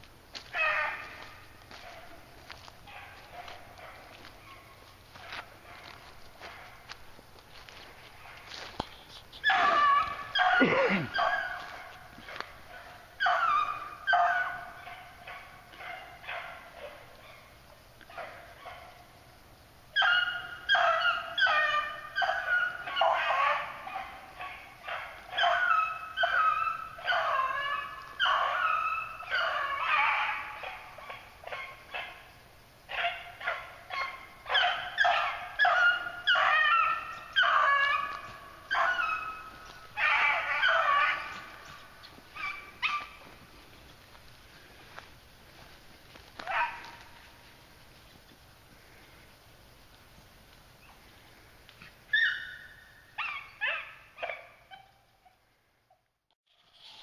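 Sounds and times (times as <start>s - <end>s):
hounds baying: 0.3s - 7.0s, 9.4s - 19.2s, 19.9s - 47.7s, 50.8s - 56.1s.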